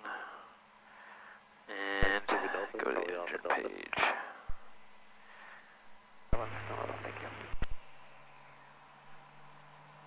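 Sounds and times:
steady radio hum: 1.6 - 9.7
radio voice over headset: 2.0 - 4.1, 6.4 - 7.6.

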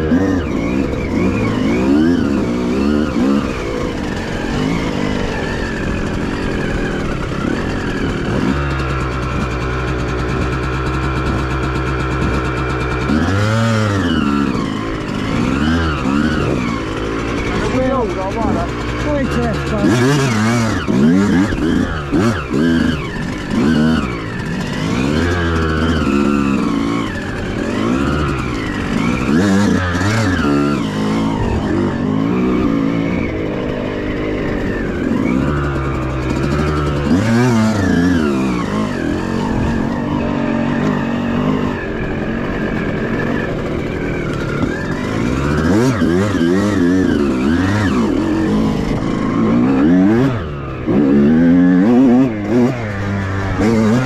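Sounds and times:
two-stroke motorcycle engines revving: 0.0 - 54.0.

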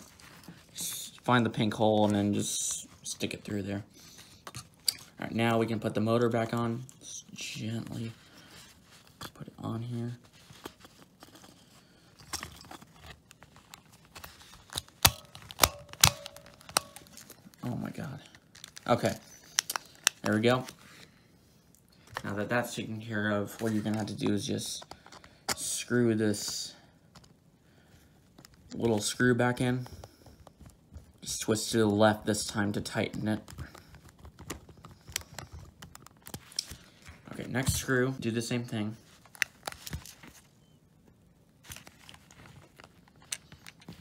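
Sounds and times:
handling rustles: 0.0 - 21.2, 22.0 - 27.4.

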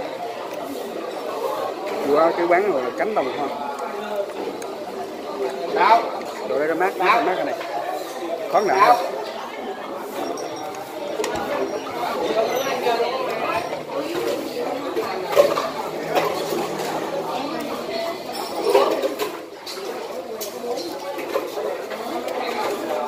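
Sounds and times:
people talking at once: 0.0 - 23.0
dishes and cutlery clinking: 10.0 - 23.0.

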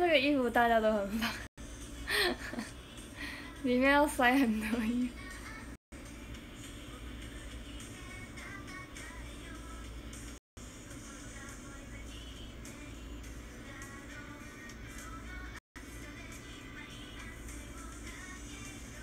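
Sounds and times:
pop music with women singing: 2.4 - 19.0.

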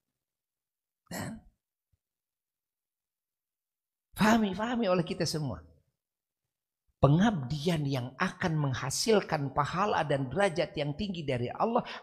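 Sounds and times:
man clearing his throat: 1.1 - 1.5.

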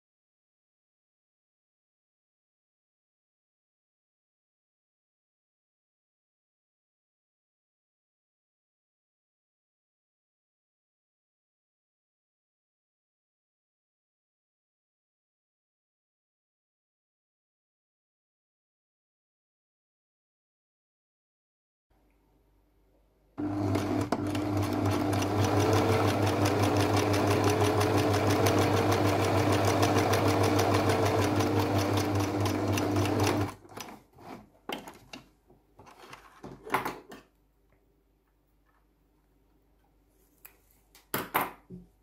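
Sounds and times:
sewing machine stitching: 23.4 - 34.4.

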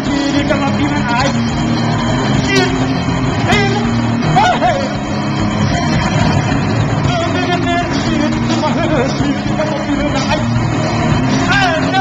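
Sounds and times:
live band playing distorted music: 0.0 - 12.0.

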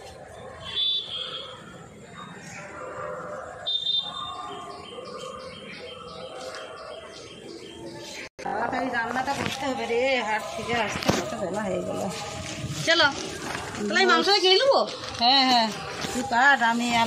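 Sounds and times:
faint distant voices: 0.0 - 17.0.

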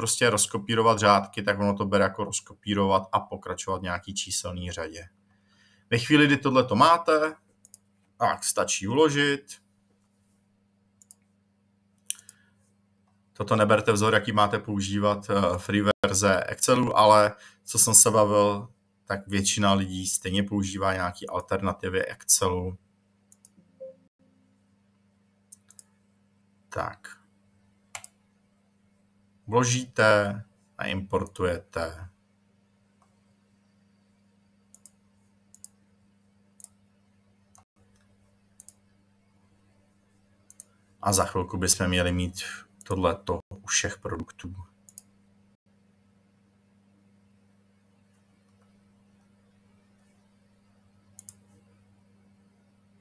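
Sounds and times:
low steady hum: 0.0 - 53.0
computer mouse clicks: 7.6 - 7.9, 11.0 - 11.3, 12.0 - 12.4, 23.3 - 23.6, 25.5 - 26.0, 27.9 - 28.2, 34.7 - 35.8, 36.6 - 36.8, 37.5 - 38.9, 40.4 - 40.8, 44.9 - 45.1, 51.1 - 51.7.

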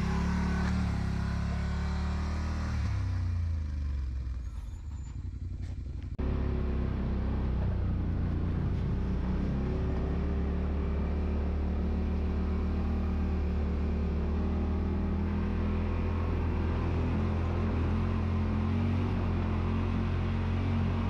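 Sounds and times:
utility vehicle engine droning: 0.0 - 21.0
faint rattle on rocky track: 4.1 - 6.2.

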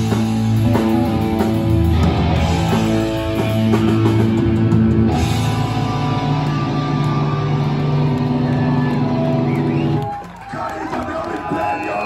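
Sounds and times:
distorted guitars and bass chord: 0.0 - 10.0.

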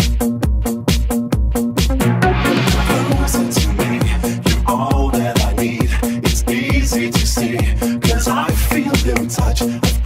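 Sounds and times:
techno dance music: 1.8 - 9.7.

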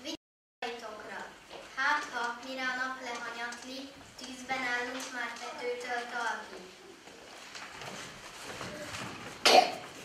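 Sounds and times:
person coughing: 9.4 - 9.9.

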